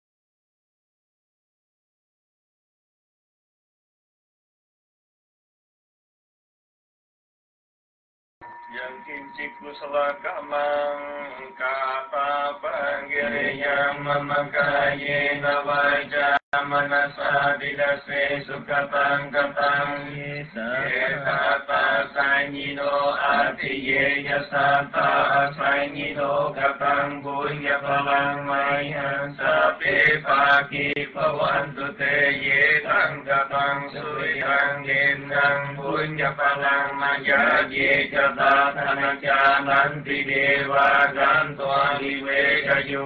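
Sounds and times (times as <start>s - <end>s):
male voices chanting: 8.7s - 43.0s.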